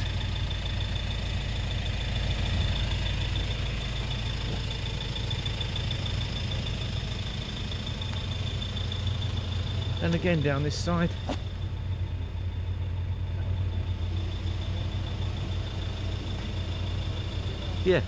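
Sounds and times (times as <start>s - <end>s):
car engine idling: 0.0s - 18.0s.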